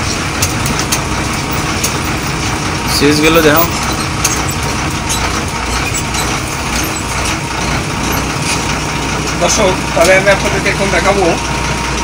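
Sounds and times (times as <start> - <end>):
bus diesel engine idling: 0.0 - 12.0.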